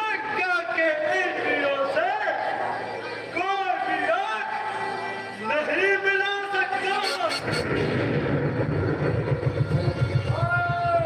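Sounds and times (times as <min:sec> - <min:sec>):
low drum roll: 0:07.6 - 0:11.0.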